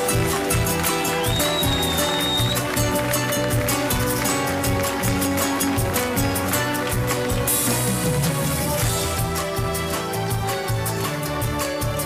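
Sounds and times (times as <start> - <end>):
hands clapping in rhythm: 0.0 - 12.0
live band playing: 0.0 - 12.0.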